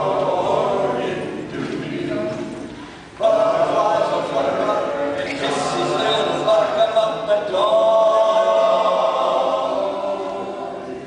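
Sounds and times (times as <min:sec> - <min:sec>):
men singing in close harmony: 0:00.0 - 0:02.6, 0:03.2 - 0:11.0.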